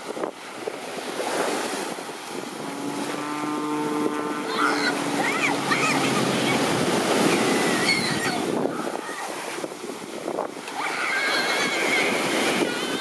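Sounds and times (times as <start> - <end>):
surf breaking on a beach: 0.0 - 13.0
wind buffeting the microphone: 0.0 - 13.0.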